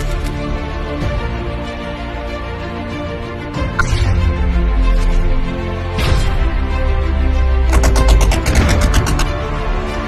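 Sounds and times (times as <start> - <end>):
fast percussion hits: 7.7 - 9.4.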